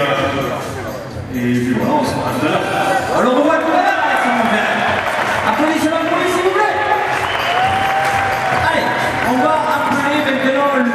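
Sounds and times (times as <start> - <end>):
man talking over public address: 0.0 - 7.2, 8.5 - 10.9.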